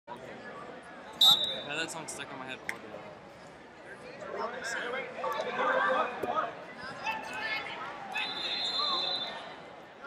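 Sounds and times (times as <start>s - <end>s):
referee's whistle blast: 1.2s - 1.7s, 8.2s - 9.4s.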